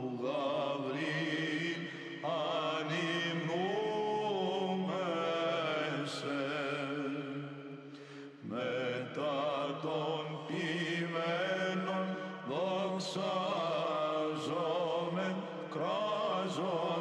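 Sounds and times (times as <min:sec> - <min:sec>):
male choir chanting: 0:00.0 - 0:07.7, 0:08.4 - 0:17.0.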